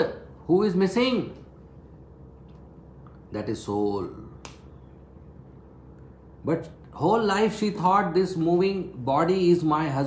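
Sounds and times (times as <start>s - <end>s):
faint electrical hum: 0.0s - 10.0s
man speaking: 3.3s - 4.4s.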